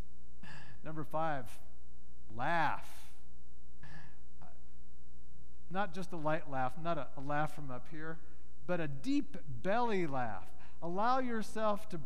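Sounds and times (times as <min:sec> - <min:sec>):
electrical mains hum: 0:00.0 - 0:12.0
speech: 0:00.8 - 0:01.7, 0:02.3 - 0:03.2, 0:05.7 - 0:12.0.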